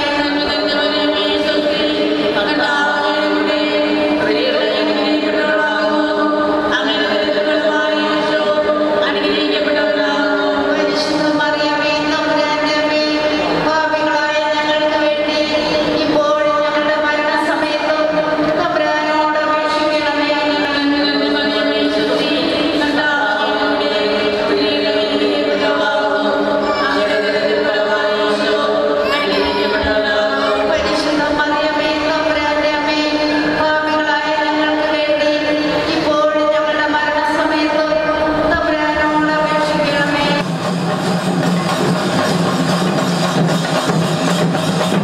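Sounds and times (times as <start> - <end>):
choir singing: 0.0 - 11.0, 21.3 - 31.8
voices chanting in unison: 0.0 - 11.6, 20.8 - 33.0.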